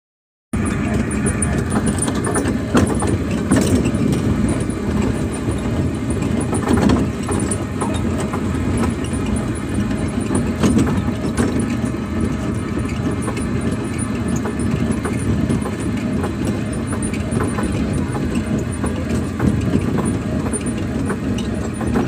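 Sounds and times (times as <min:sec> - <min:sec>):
car engine and road noise: 0:00.6 - 0:22.0
sharp knocks and clicks: 0:00.6 - 0:22.0.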